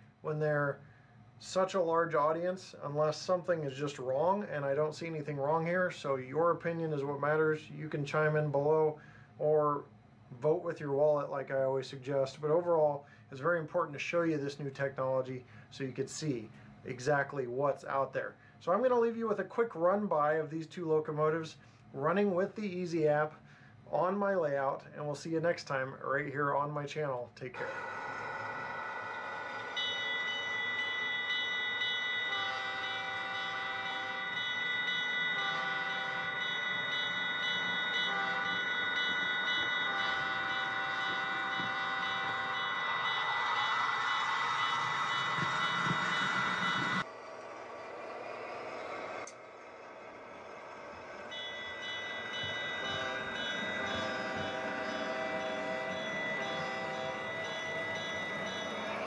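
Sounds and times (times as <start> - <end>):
diesel locomotive engine: 27.6 - 59.0
locomotive horn blasts: 29.6 - 47.0, 51.3 - 59.0.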